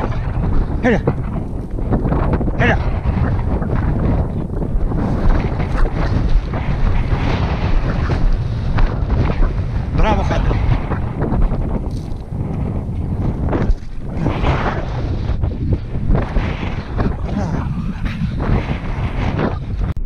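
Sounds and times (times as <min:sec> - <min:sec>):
low rumble: 0:00.0 - 0:20.0
wind buffeting microphone: 0:00.0 - 0:20.0.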